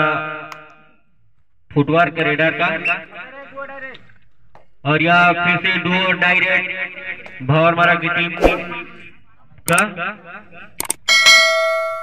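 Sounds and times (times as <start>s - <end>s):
bell chime: 11.1s - 12.0s.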